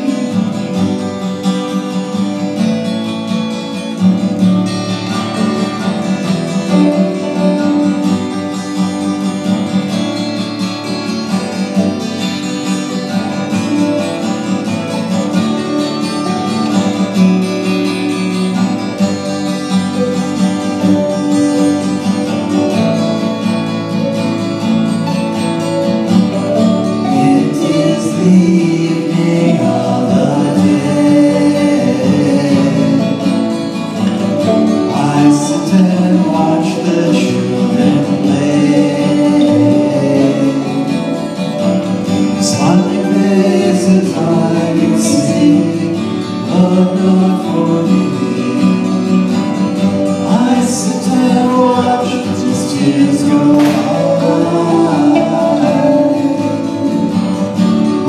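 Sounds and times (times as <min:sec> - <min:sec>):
mandolin: 0:00.0 - 0:58.0
strummed acoustic guitar: 0:00.0 - 0:58.0
bass line: 0:52.2 - 0:58.0.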